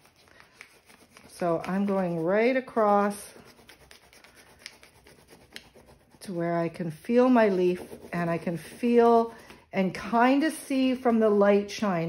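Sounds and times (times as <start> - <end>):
candle rubbing over paper: 0.0 - 9.7.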